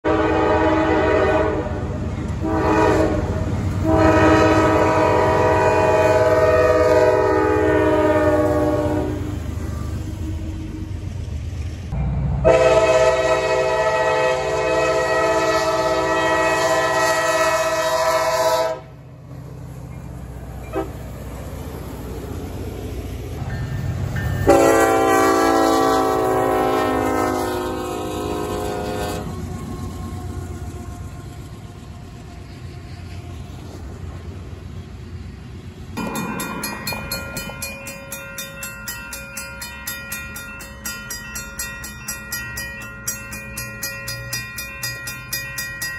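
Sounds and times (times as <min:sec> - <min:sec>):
locomotive air horn blasts: 0:00.0 - 0:10.6, 0:12.4 - 0:19.0, 0:20.7 - 0:21.0, 0:24.4 - 0:29.6
low rumble of passing train: 0:00.0 - 0:45.9.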